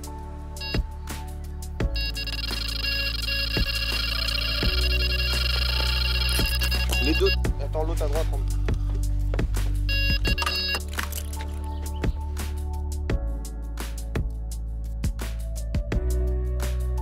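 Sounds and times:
background music with steady beat: 0.0 - 17.0
electronic bite alarm tones: 1.9 - 7.5, 9.9 - 10.9.

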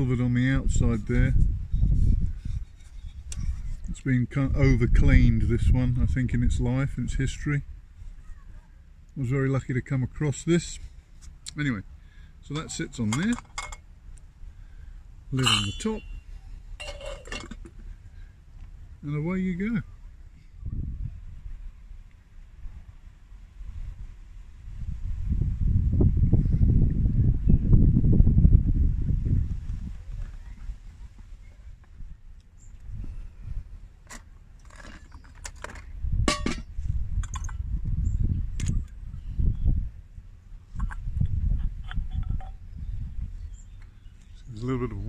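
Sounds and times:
wind rumble on microphone: 0.0 - 11.0, 19.6 - 34.0, 35.0 - 45.0
light metallic clinks and taps: 41.8 - 42.6.

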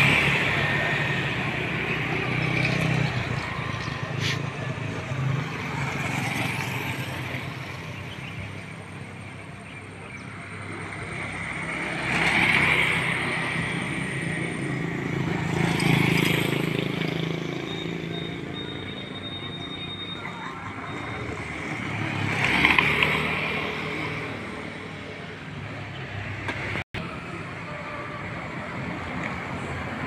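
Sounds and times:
motorcycles passing: 0.0 - 30.0.

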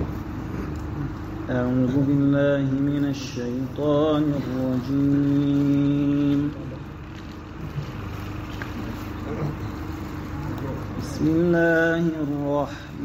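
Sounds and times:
hall noise: 0.0 - 13.0
man chanting a long note: 1.0 - 7.0, 9.0 - 13.0.

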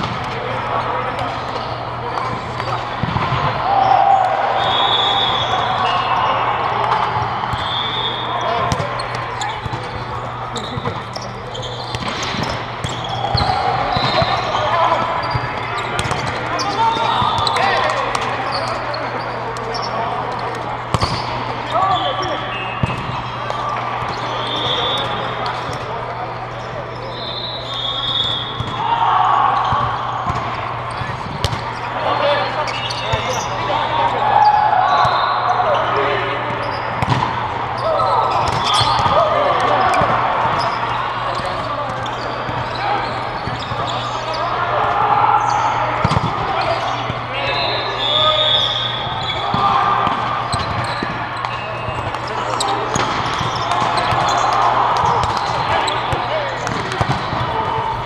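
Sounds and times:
volleyball hits and bounces: 0.0 - 3.6, 8.4 - 18.7, 20.2 - 21.5, 22.2 - 26.0, 28.5 - 28.8, 29.6 - 31.8, 36.4 - 37.5, 38.1 - 42.7, 46.0 - 47.2, 49.1 - 57.8
players calling out: 0.0 - 58.0
shoe squeaks on court: 7.5 - 20.0, 37.8 - 44.6, 45.4 - 57.4.

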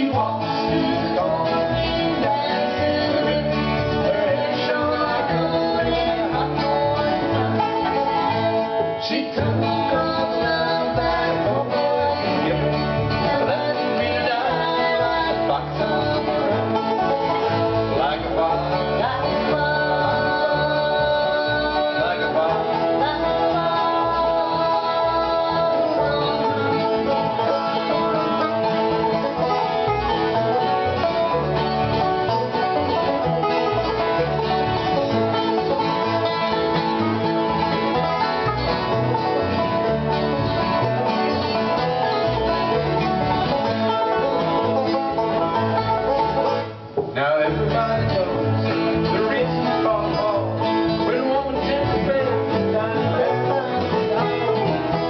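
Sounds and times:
bluegrass band playing: 0.0 - 55.0.

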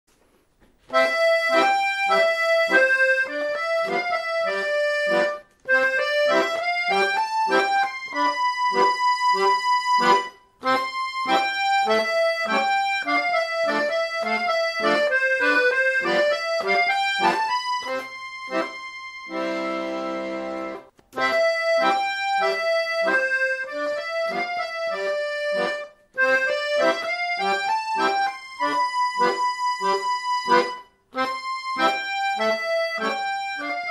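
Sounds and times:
accordion melody: 0.1 - 33.9.

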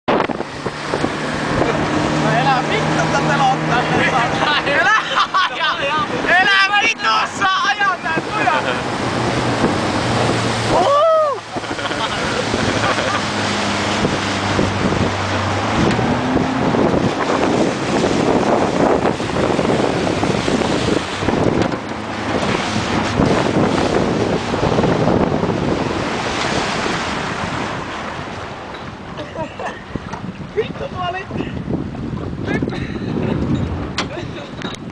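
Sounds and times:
boat engine humming: 0.1 - 34.9
water rushing past boat: 0.1 - 34.9
wind buffeting microphone: 0.1 - 34.9
person shouting: 10.7 - 11.4.

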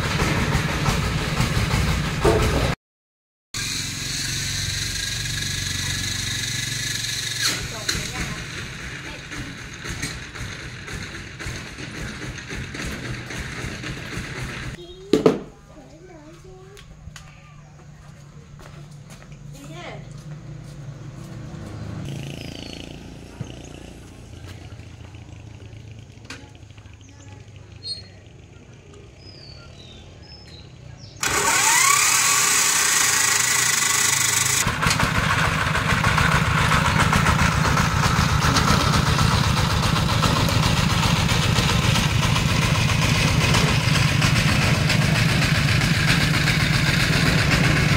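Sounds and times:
diesel engine chugging: 0.0 - 2.8, 3.6 - 15.1, 17.8 - 47.9
starter whirr: 3.6 - 14.8, 31.2 - 47.9.

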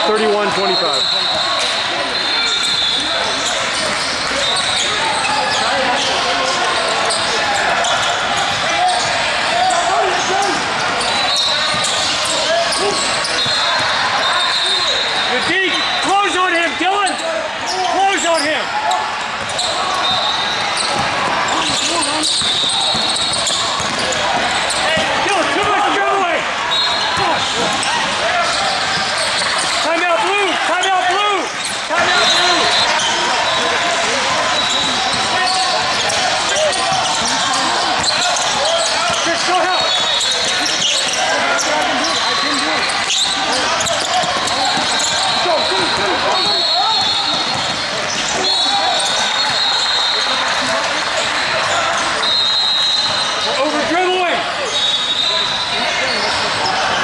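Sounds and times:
sneakers squeaking on court: 0.4 - 16.0, 17.1 - 25.8, 26.7 - 29.8, 31.5 - 53.5
basketball bouncing: 19.4 - 25.8, 43.8 - 48.4.

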